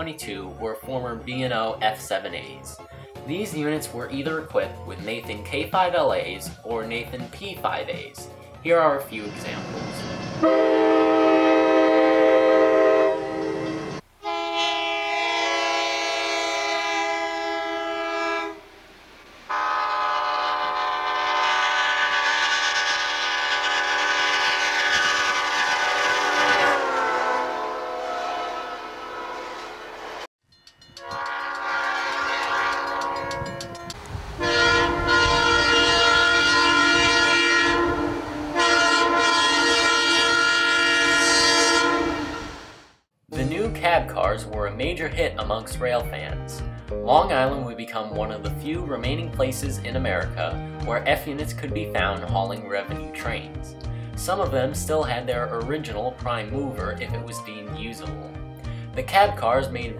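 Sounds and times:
low rumble of passing train: 9.1 - 42.9
train horn blasts: 9.4 - 18.7, 19.5 - 30.3, 30.9 - 42.9.

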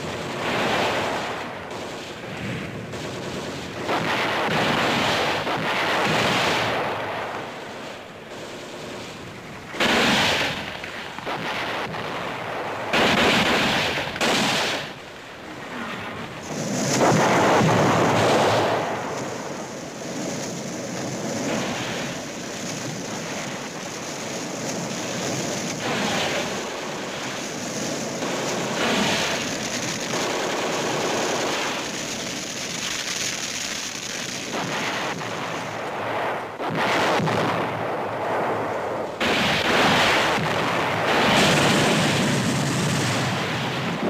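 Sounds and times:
explosion blasts: 0.0 - 7.6, 8.3 - 15.0, 15.9 - 20.3, 34.4 - 44.0
flamethrower burst: 0.0 - 15.0, 15.6 - 44.0
gunfire: 0.0 - 15.0, 25.0 - 27.0, 27.7 - 33.6, 34.2 - 44.0
flames roaring: 0.0 - 44.0.

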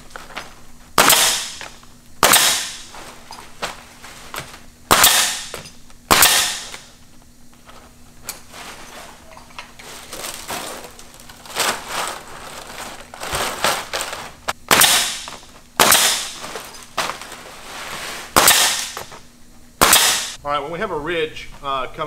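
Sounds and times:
pneumatic nailer firing: 1.0 - 2.9, 4.9 - 6.9, 13.3 - 16.8, 18.3 - 19.2, 19.8 - 20.4
plastic thatch rustling: 2.8 - 4.7, 7.6 - 14.6, 16.3 - 18.3.

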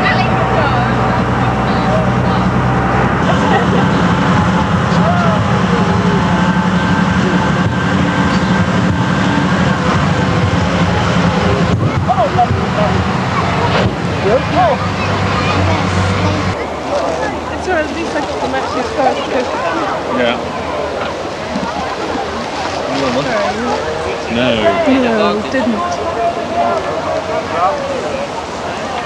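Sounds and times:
tractor engine running: 0.0 - 25.3
faint voices: 0.0 - 29.0.

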